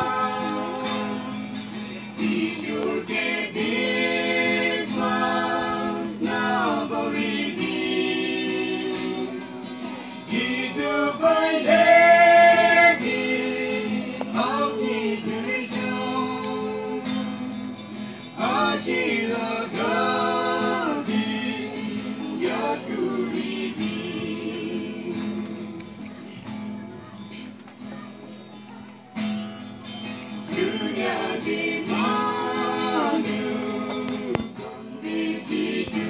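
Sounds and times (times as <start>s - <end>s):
group singing: 0.0s - 26.2s, 30.3s - 36.0s
strummed acoustic guitar: 0.0s - 36.0s.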